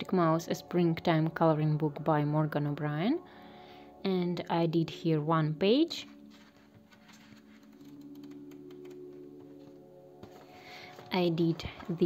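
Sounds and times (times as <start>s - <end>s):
background music held tones: 0.0s - 12.0s
paper pages flipping: 6.2s - 12.0s.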